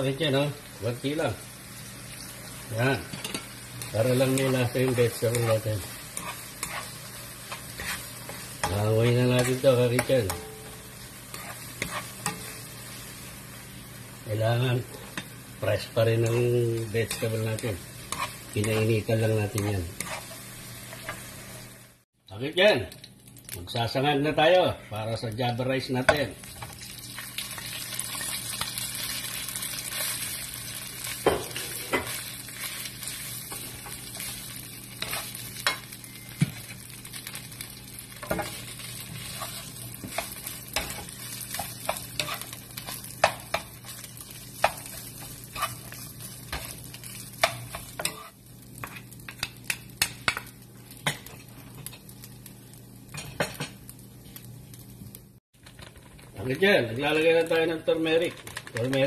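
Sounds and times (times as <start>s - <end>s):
rice sizzling in oil in a pan: 0.0s - 24.4s, 25.4s - 59.0s.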